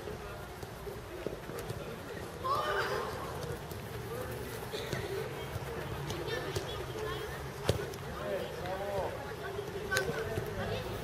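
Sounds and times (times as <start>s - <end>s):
distant players' voices: 0.0s - 11.0s.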